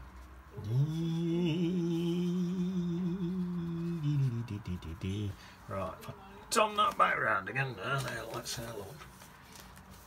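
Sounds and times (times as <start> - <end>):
man humming a low note: 0.5 - 5.4.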